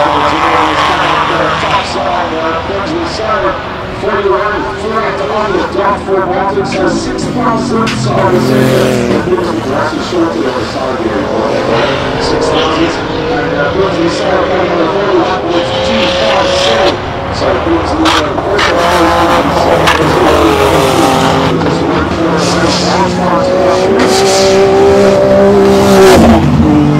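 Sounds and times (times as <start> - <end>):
race car engine at full throttle: 0.0 - 26.9.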